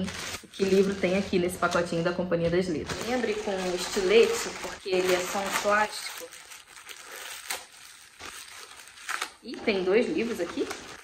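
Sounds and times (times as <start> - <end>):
plastic mailer bag crinkling: 0.0 - 2.1, 2.8 - 11.0.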